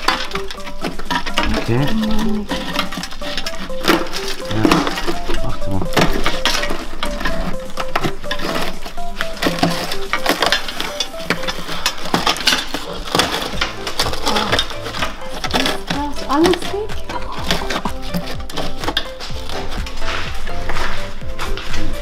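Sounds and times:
background music with melody: 0.0s - 22.0s
rusted metal crunching and clinking: 0.0s - 22.0s.

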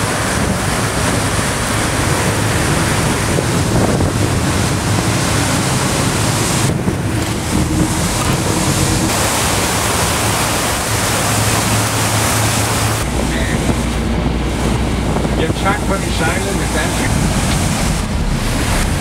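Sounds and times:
low engine hum: 0.0s - 19.0s
water rushing along boat hull: 0.0s - 19.0s
wind buffeting microphone: 0.0s - 19.0s.

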